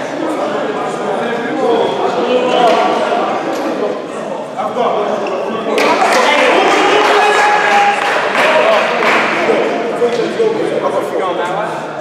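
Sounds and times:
echoing voices in sports hall: 0.0 - 12.0.

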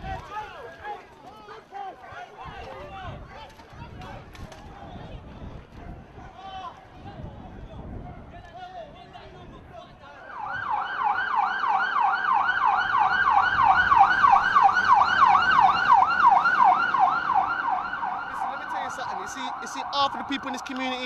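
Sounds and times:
police siren yelping: 10.2 - 21.0.

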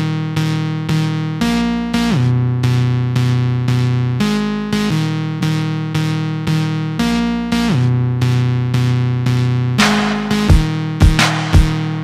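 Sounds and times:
keyboard melody: 9.8 - 12.0.

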